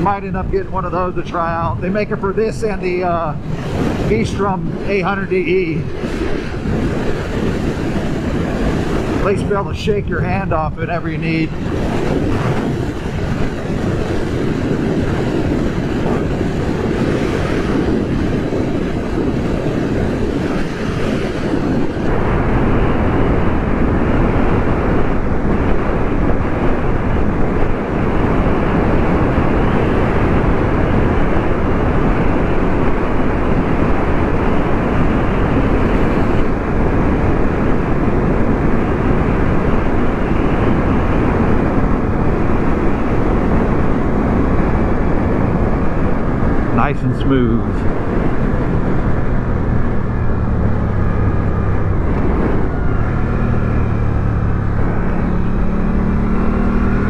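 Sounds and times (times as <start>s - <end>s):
motorcycle engine and road noise: 0.0s - 57.0s
wind rushing on microphone: 0.0s - 57.0s.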